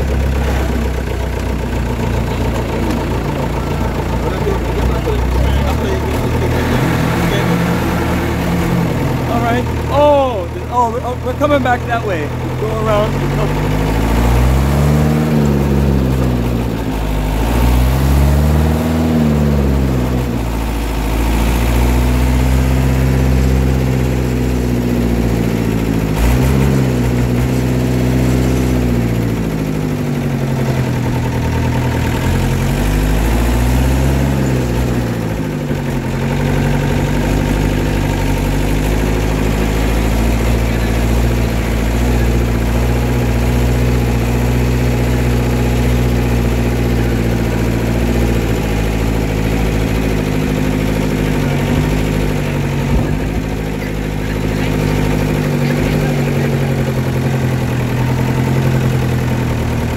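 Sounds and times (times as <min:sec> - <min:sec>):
vehicle engine accelerating: 0:00.0 - 0:59.9.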